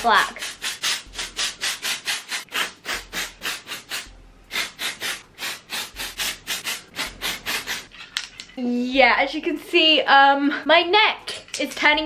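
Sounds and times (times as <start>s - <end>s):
aerosol spray bursts: 0.4s - 7.9s.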